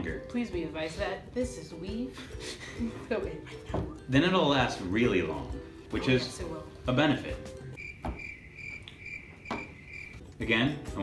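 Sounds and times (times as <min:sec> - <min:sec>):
cricket chirping: 0:07.8 - 0:10.2.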